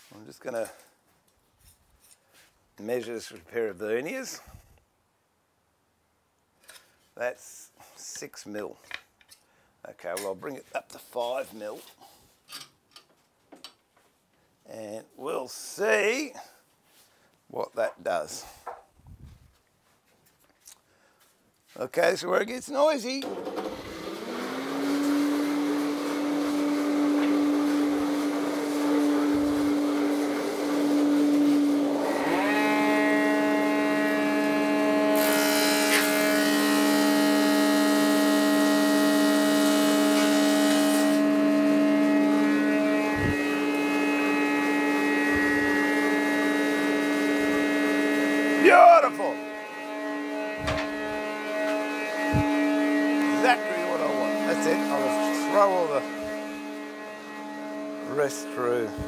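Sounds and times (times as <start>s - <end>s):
woodworking machine motors humming: 23.2s - 59.0s
hissy wood cutting noise: 23.5s - 59.0s.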